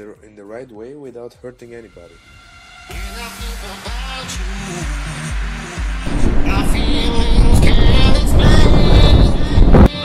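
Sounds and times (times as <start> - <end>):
background music: 0.0 - 10.0
train rushing and rumbling: 6.0 - 9.9.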